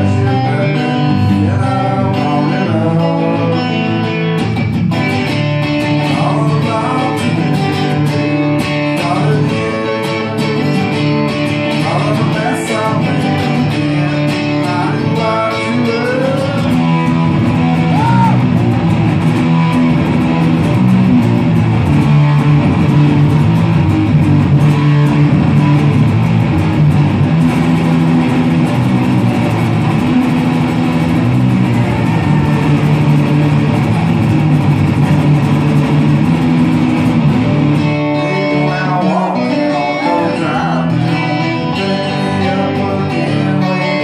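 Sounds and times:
acoustic guitar strumming chords: 0.0 - 44.0
low bass line: 16.4 - 43.1.

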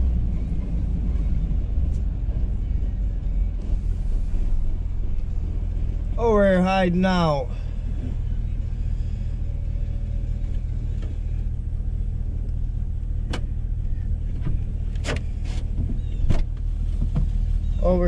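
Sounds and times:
truck engine idling: 0.0 - 18.0.

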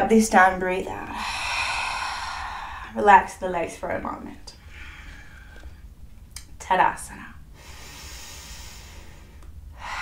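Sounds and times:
woman exhaling: 1.1 - 3.0, 7.6 - 10.0.

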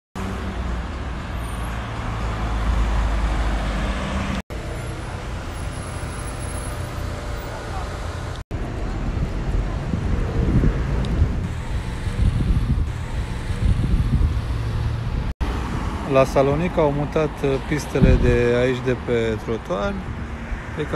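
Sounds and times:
road traffic rumble: 0.2 - 20.9.

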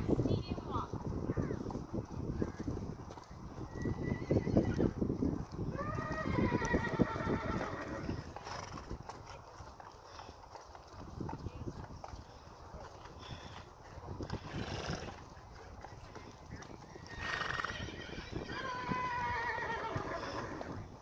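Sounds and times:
muffled hoofbeats on sand: 0.0 - 21.0
horse whinnying: 3.7 - 4.9, 5.7 - 8.9, 17.0 - 20.9.

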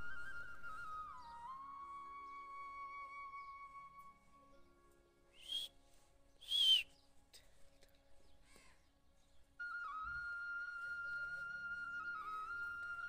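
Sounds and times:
flute tune: 0.0 - 6.9, 9.6 - 13.0.

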